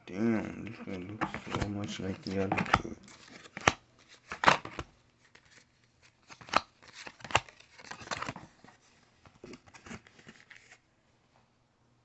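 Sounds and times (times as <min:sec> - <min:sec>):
soft rustling of cards: 0:00.1 - 0:11.5
trading cards clicking and scraping: 0:00.9 - 0:04.8, 0:06.2 - 0:08.8.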